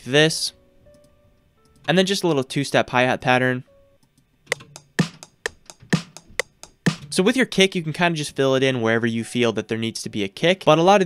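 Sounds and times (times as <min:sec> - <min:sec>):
closed hi-hat ticks: 0:04.1 - 0:07.2
snare drum hits: 0:04.5 - 0:07.2.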